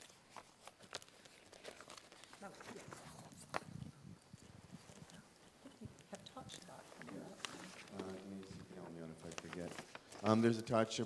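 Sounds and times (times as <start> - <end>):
faint footsteps: 0.0 - 10.5
light shuffling: 0.0 - 10.8.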